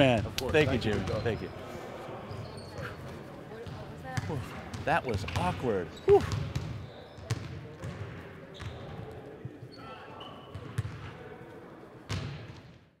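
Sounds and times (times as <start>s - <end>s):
faint voices: 0.8s - 12.1s
basketballs bouncing on wooden floor: 6.1s - 8.8s, 10.5s - 11.1s.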